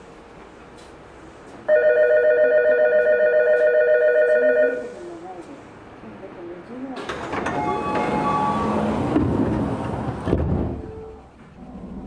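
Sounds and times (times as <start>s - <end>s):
electronic departure bell ringing: 1.7s - 4.9s.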